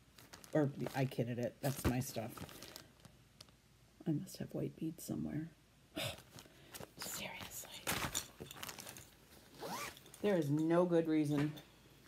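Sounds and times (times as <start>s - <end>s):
plastic packaging rustling: 0.0s - 3.6s, 6.2s - 10.6s.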